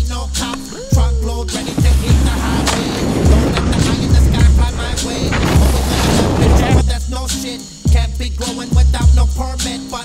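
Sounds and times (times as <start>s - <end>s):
hip hop backing track: 0.0s - 10.0s
snowboard scraping over snow: 1.5s - 6.8s.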